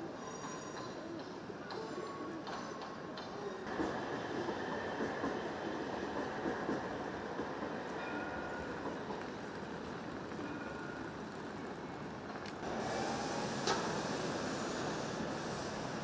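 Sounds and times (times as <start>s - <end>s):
city background noise: 0.0s - 16.0s.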